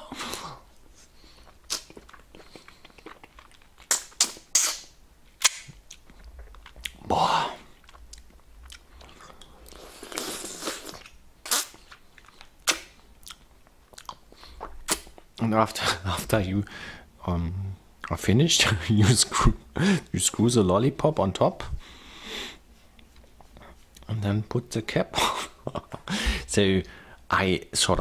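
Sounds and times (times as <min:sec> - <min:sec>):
mouth clicks: 0:01.7 - 0:07.0.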